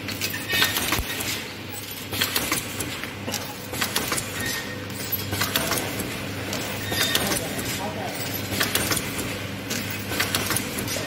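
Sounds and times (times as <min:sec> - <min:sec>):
mechanism clicking and clinking: 0:00.0 - 0:11.0
packing machine humming: 0:00.0 - 0:11.0.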